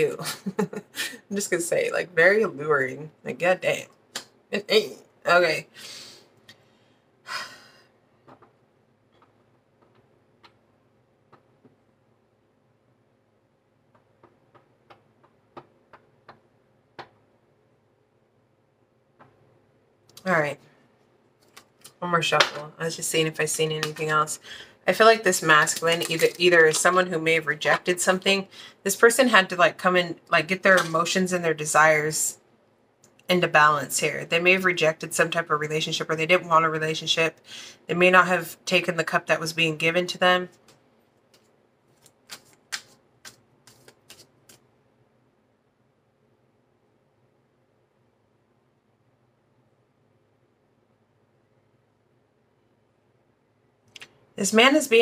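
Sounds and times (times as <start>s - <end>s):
cards being shuffled: 25.3s - 27.1s, 40.6s - 44.7s
cards tapping on glass table: 42.0s - 44.6s.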